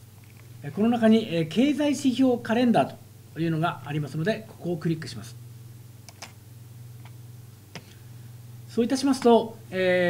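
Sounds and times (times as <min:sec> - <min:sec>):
low electrical hum: 0:00.0 - 0:10.0
computer mouse clicks: 0:00.2 - 0:00.5, 0:06.1 - 0:06.4.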